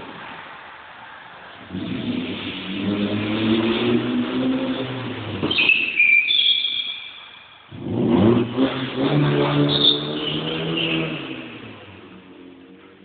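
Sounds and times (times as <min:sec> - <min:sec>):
car engine revving: 0:00.0 - 0:06.0, 0:06.7 - 0:13.0
tyres squealing: 0:05.4 - 0:07.7.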